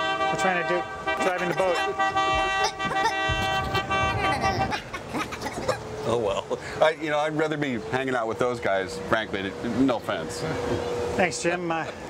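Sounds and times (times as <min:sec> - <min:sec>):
boat horn blast: 0:00.0 - 0:05.0
squeaky cartoon chatter: 0:02.6 - 0:05.8.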